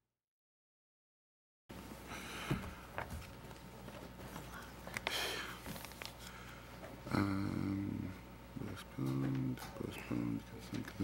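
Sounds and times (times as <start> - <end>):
low room hum: 1.7 - 11.0
paper handling: 3.0 - 6.4.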